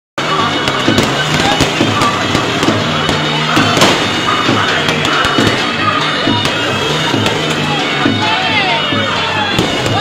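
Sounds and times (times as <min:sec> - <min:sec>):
firecrackers cracking: 0:00.2 - 0:07.9, 0:09.5 - 0:10.0
loud continuous din: 0:00.2 - 0:10.0.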